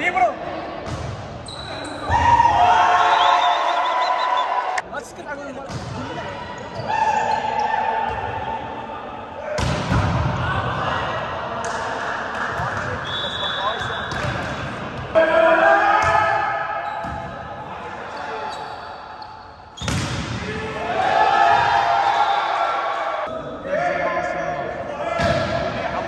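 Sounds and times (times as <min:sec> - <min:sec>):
players shouting: 0:01.7 - 0:04.8, 0:20.1 - 0:26.0.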